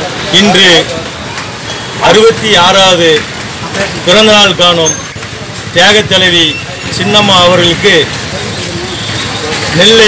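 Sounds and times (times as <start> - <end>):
street traffic murmur: 0.0 - 10.0.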